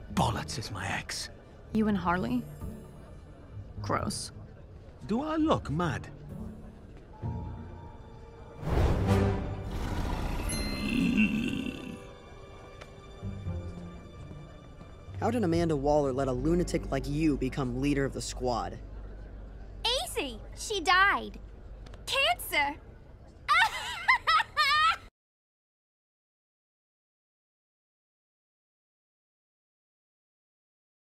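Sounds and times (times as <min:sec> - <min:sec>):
low growling grunt: 0:09.6 - 0:12.1
woman cackling laugh: 0:23.5 - 0:25.1.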